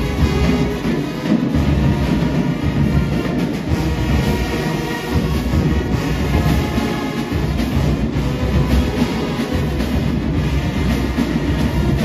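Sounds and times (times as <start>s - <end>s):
brass with sousaphones: 0.0s - 12.0s
drum-line hits: 0.0s - 12.0s.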